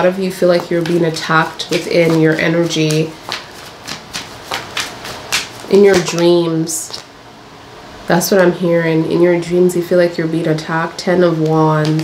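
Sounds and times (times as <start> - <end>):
cards being shuffled: 0.5 - 7.1.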